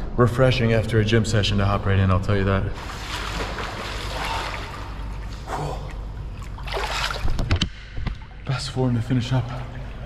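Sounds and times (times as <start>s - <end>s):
water splashing and sloshing: 2.7s - 10.0s.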